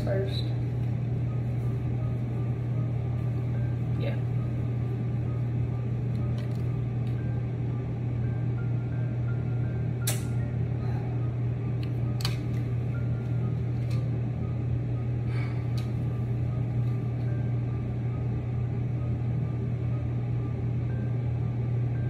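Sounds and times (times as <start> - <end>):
low mechanical hum: 0.0 - 22.0
sharp click: 10.0 - 10.4.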